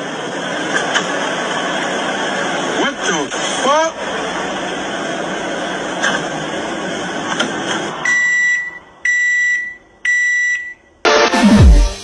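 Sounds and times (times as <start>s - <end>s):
microwave oven beeps: 8.0s - 11.8s
electronic dance music: 11.1s - 12.0s.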